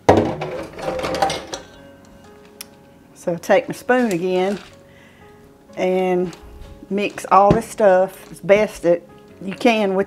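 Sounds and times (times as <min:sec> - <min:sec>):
utensil scraping dough in metal bowl: 0:03.6 - 0:04.8, 0:05.8 - 0:08.9.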